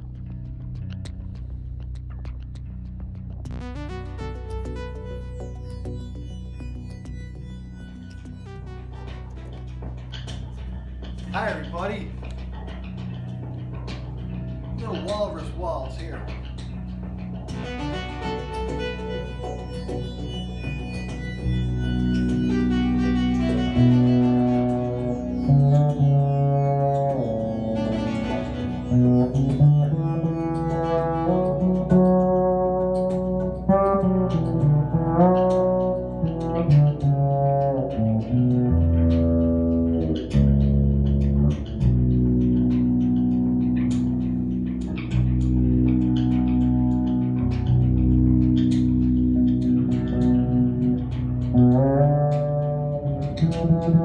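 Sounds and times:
electric bass guitar waltz: 0:00.0 - 0:54.0.

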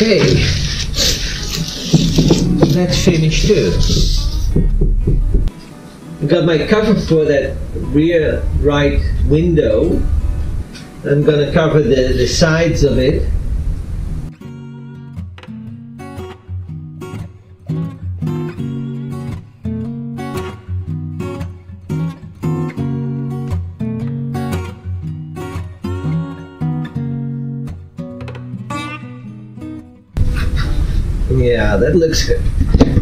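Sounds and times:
room sound: 0:00.0 - 0:06.4
acoustic guitar plucked notes: 0:00.0 - 0:11.6, 0:14.3 - 0:31.2.

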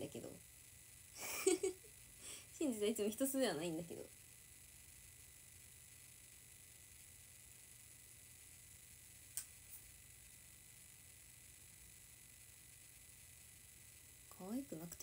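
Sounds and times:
faint room hiss: 0:00.0 - 0:15.0.

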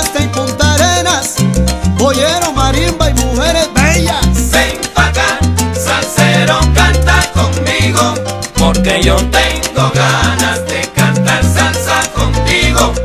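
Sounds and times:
instrumental salsa music: 0:00.0 - 0:13.0.

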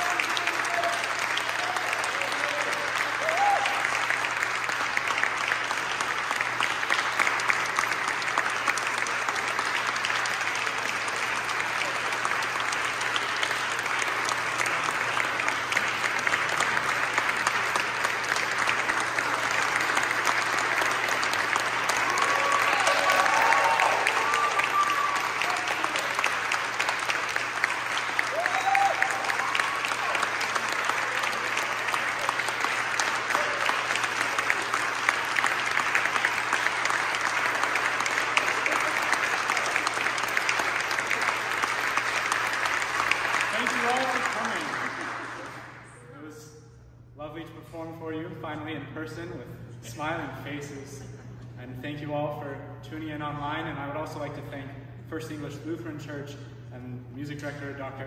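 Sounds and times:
audience applauding: 0:00.0 - 0:46.1.

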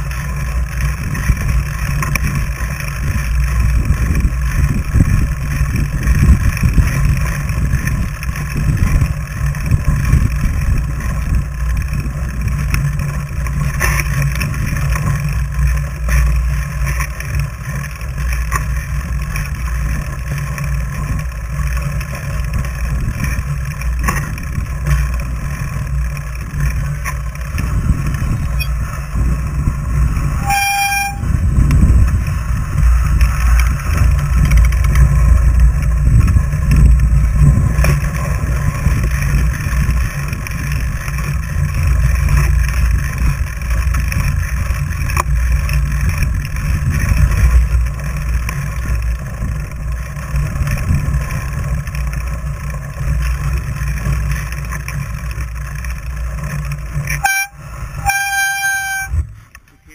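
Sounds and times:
bike tire rumble on snow: 0:00.0 - 0:59.9
high-pitched squealing tones: 0:28.5 - 0:28.8, 0:30.4 - 0:31.4, 0:57.2 - 0:59.9.

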